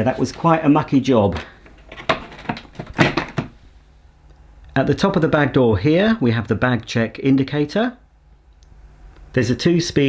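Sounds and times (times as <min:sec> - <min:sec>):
plastic knocks and clicks: 0:01.7 - 0:03.5.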